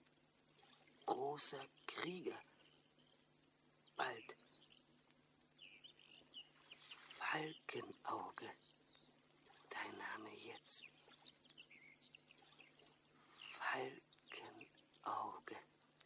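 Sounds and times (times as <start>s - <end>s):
faint bird chirps: 0.4s - 16.0s
man whispering breathily: 4.0s - 4.4s, 6.7s - 8.6s, 9.7s - 10.8s, 13.2s - 15.7s.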